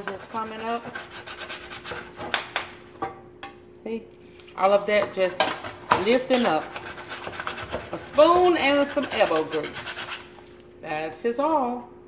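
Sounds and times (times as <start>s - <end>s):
metal spoon scraping grease: 0.0s - 2.3s, 5.3s - 10.4s.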